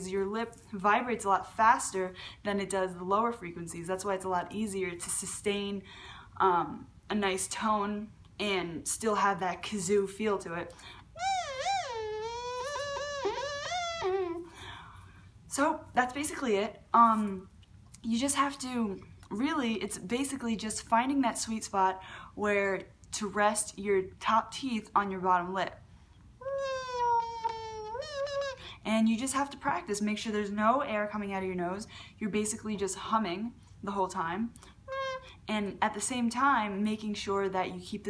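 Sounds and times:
beatboxed kazoo buzz: 11.2s - 14.5s, 26.4s - 28.8s, 34.9s - 35.3s.

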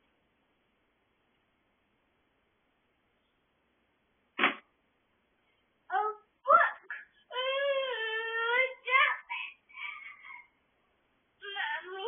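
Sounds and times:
faint steady hiss: 0.0s - 12.0s
short thump: 4.4s - 4.7s.

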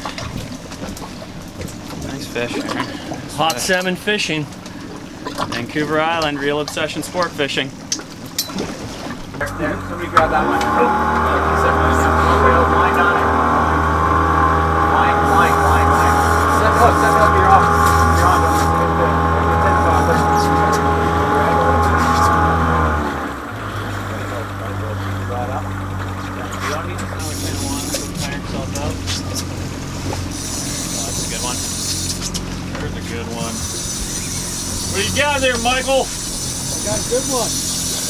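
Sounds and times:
outboard motors running: 0.0s - 38.0s.

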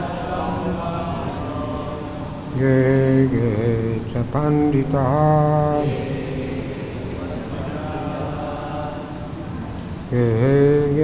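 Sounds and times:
man chanting: 0.0s - 9.1s, 10.1s - 11.0s
fainter voices chanting: 0.0s - 11.0s.

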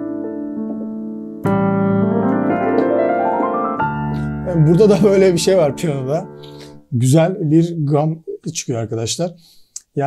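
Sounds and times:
digital piano chords: 0.0s - 8.0s
piano rising scale run: 0.2s - 6.4s.

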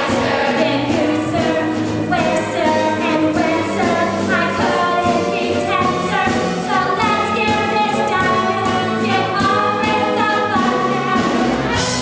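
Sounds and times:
chorus singing: 0.0s - 12.0s.

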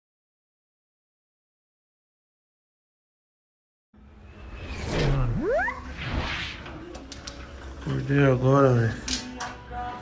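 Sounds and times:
upward gliding tone: 4.6s - 6.6s.

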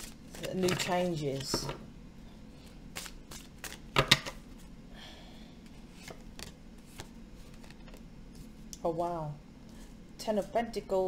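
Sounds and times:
cards shuffling: 0.0s - 1.8s, 2.9s - 4.4s, 6.0s - 8.5s.

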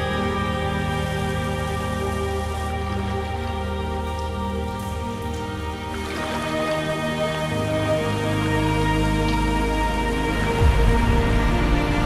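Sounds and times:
ambient music pad: 0.0s - 12.0s
stream water over rocks: 3.5s - 10.6s.

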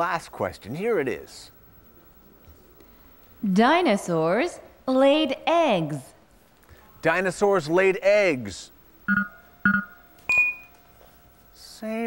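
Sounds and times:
short electronic beeps: 9.1s - 10.7s.

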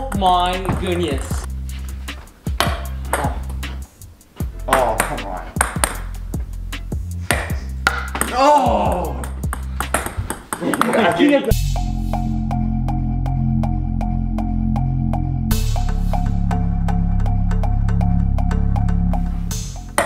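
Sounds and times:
background music: 0.0s - 20.0s
ping pong balls bouncing: 2.5s - 3.7s, 4.7s - 6.1s, 7.3s - 11.5s
voices shouting: 8.3s - 9.2s.

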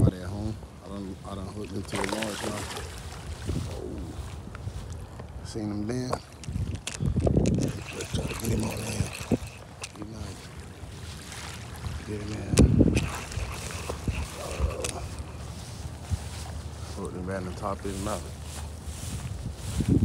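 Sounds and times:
wind buffeting microphone: 0.0s - 20.0s
indistinct voices: 12.1s - 15.5s.

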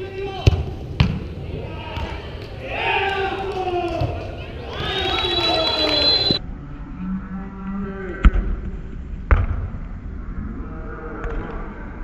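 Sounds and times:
soccer ball being kicked: 0.4s - 1.3s
voices shouting: 1.4s - 6.4s.

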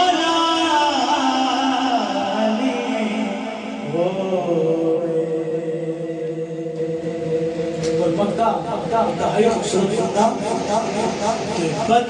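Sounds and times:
man singing into a microphone: 0.0s - 7.6s.

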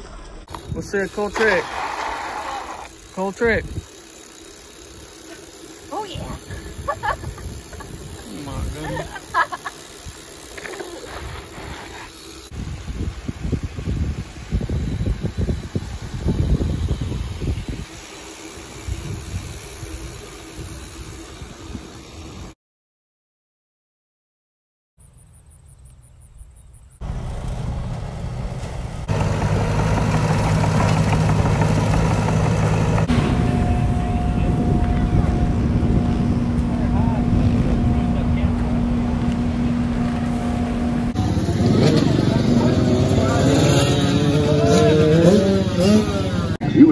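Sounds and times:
wind buffeting microphone: 6.2s - 9.2s, 12.5s - 18.0s, 31.2s - 41.2s
loud engine drone: 27.0s - 46.8s.

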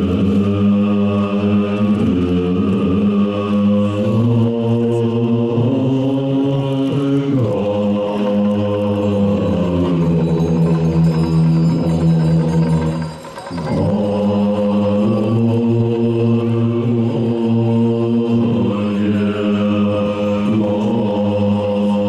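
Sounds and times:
monks chanting in unison: 0.0s - 22.0s.

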